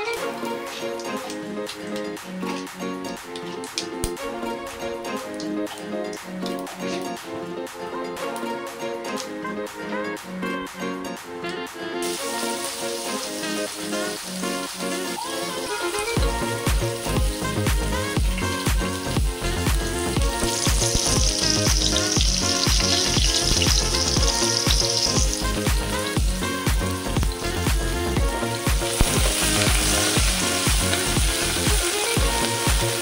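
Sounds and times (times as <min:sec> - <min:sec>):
background music with steady beat: 0:00.0 - 0:33.0
onions sizzling in hot oil: 0:12.0 - 0:33.0.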